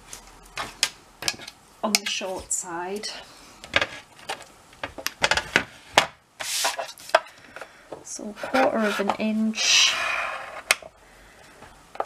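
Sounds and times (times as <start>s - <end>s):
plastic board knocking and clattering: 3.8s - 6.2s.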